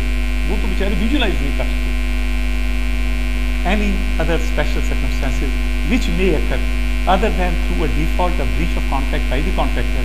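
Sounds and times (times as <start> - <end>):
electrical mains hum: 0.0 - 10.0
person speaking: 0.4 - 1.9, 3.6 - 10.0.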